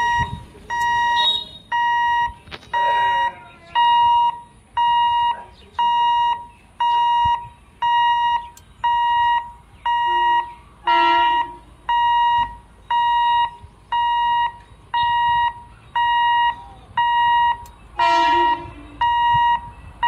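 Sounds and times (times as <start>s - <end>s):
level crossing alarm beeping: 0.0s - 19.9s.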